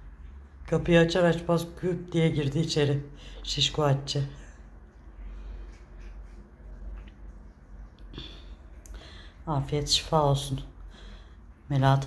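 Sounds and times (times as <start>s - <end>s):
cats chewing: 4.4s - 9.3s.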